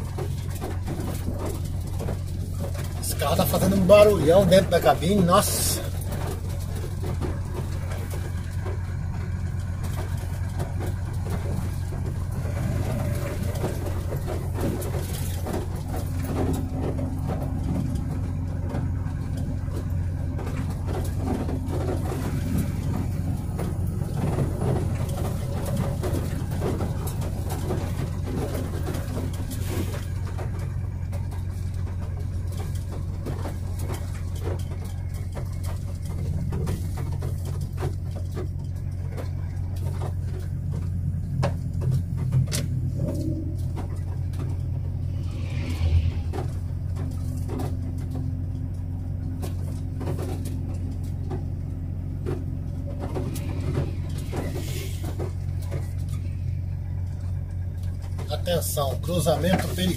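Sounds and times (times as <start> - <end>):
truck engine and road noise: 0.0 - 59.9.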